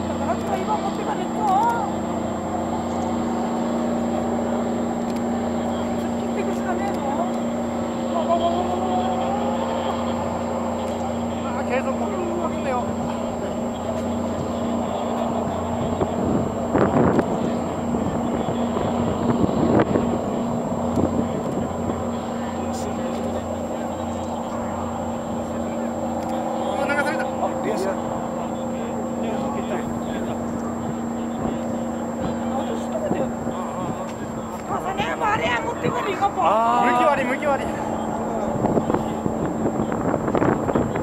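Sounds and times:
low engine hum: 0.0s - 41.0s
people talking: 0.0s - 41.0s.

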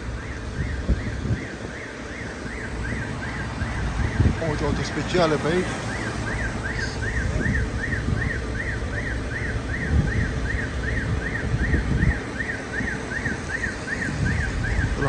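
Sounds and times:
electronic alarm wailing: 0.0s - 15.0s
wind rumble on microphone: 0.0s - 15.0s.

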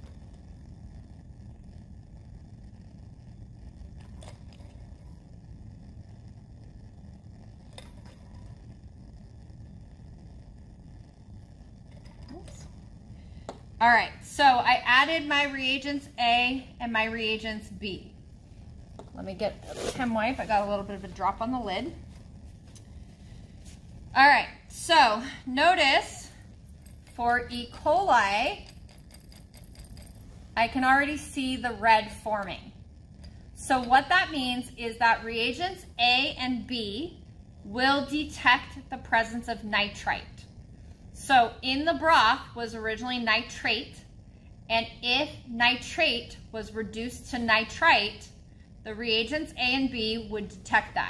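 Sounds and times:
room hum: 0.0s - 51.0s.

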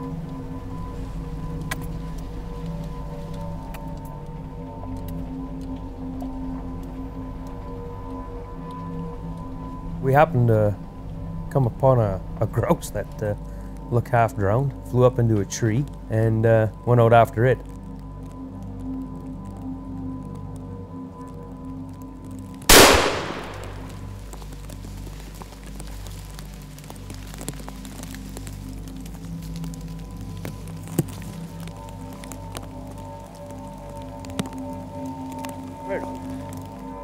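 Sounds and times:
quiet background music: 0.0s - 37.0s
gunshot: 22.7s - 24.0s.

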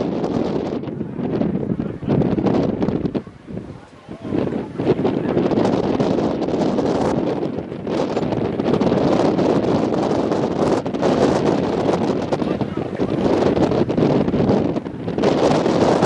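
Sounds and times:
wind on microphone: 0.0s - 16.0s.

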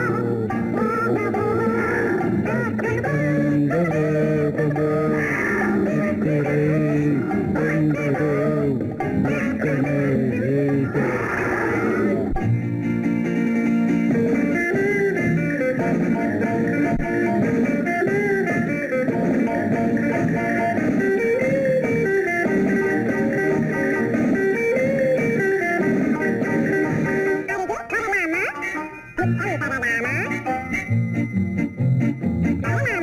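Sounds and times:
lively instrumental film music: 0.0s - 33.0s.

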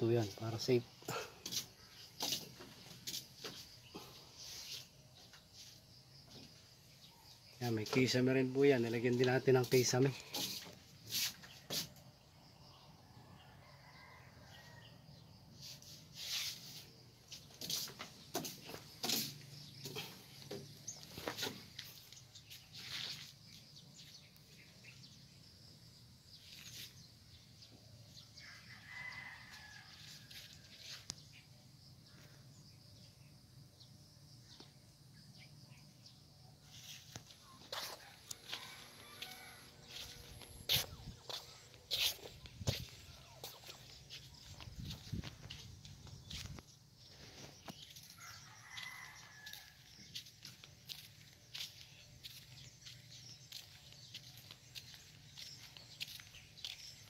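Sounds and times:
distant rooster crowing: 13.2s - 15.1s, 28.4s - 31.0s, 37.7s - 41.4s, 47.9s - 50.3s.

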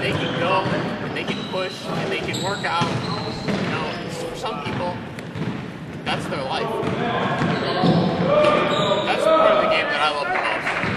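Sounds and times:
man's voice in a hall: 0.0s - 5.1s, 6.0s - 7.4s, 8.2s - 10.9s.

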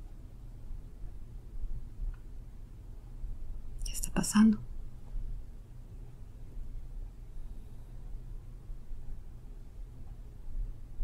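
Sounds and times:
person whispering: 3.8s - 4.6s.

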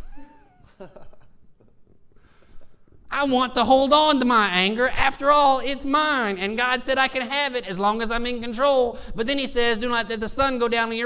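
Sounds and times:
high-pitched laugh: 0.0s - 1.3s
faint chuckles: 0.0s - 1.7s.

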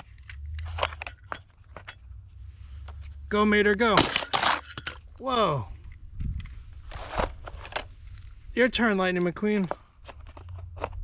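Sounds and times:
low steady rumble: 0.0s - 8.6s
plastic toy knocks and crunches: 9.6s - 11.0s.

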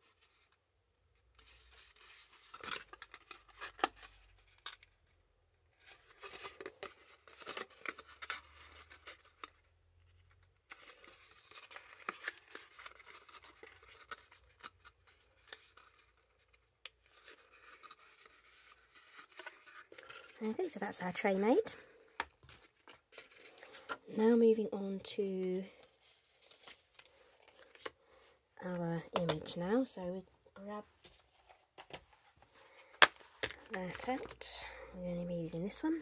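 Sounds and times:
cardstock rustling and clicking: 5.8s - 24.0s.

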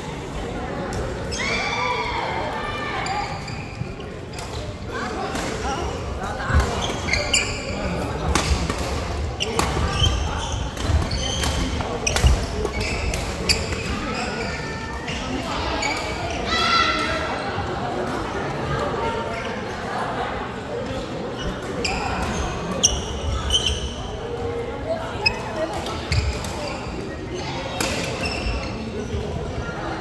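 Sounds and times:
shoes squeaking on court: 3.0s - 4.8s, 6.6s - 8.6s, 9.4s - 16.4s, 21.4s - 24.2s, 25.2s - 29.2s.

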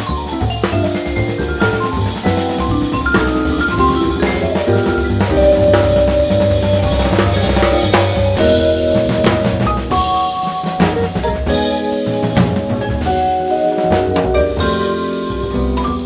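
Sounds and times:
jazz drum kit: 0.0s - 16.0s
walking bass line: 0.0s - 16.0s
long held melody notes: 0.3s - 16.0s.

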